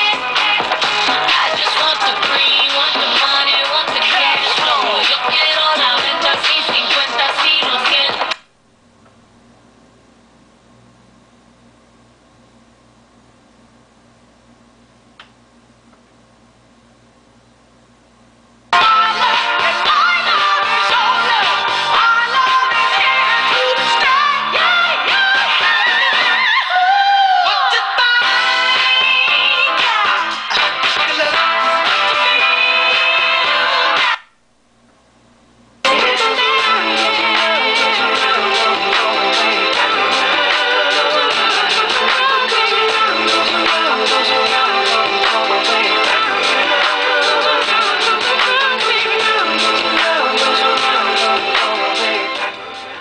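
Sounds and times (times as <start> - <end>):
music through a speaker: 0.0 - 8.6, 18.7 - 34.4, 35.8 - 53.0.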